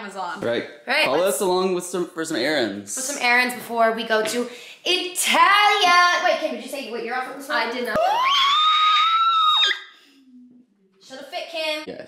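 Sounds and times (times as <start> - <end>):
woman shrieking: 8.0 - 10.0.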